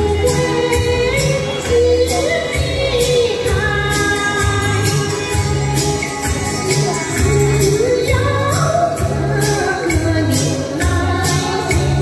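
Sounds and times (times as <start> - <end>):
backing music with light percussion: 0.0 - 12.0
women singing into microphones: 0.0 - 12.0.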